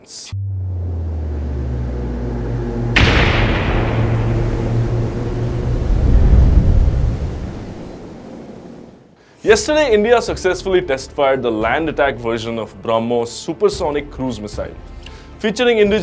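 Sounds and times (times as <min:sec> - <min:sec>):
low steady drone: 0:00.3 - 0:08.9
cinematic boom: 0:00.3 - 0:09.0.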